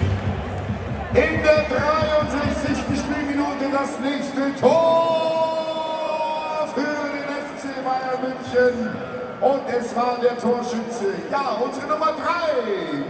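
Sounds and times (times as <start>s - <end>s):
stadium crowd: 0.0s - 13.0s.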